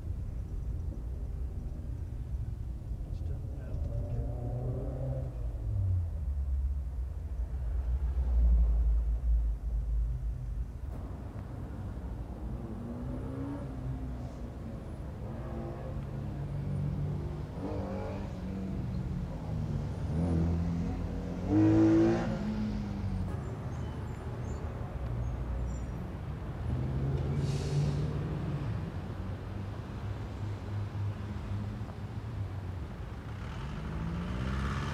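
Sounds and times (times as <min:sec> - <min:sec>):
vehicle road rumble: 0:00.0 - 0:34.9
engine revving: 0:03.7 - 0:05.4, 0:19.9 - 0:22.8, 0:33.3 - 0:34.9.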